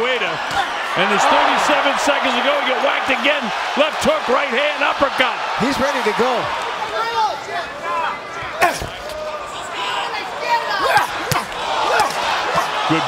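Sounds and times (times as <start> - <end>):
noisy arena crowd: 0.0 - 13.0
people shouting: 0.1 - 5.0, 6.9 - 13.0
boxing gloves punching: 10.8 - 12.2.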